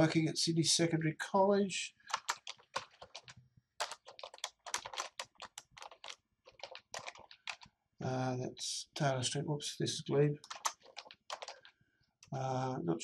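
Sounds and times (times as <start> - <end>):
typing on computer keyboard: 2.0 - 7.7, 10.4 - 11.8.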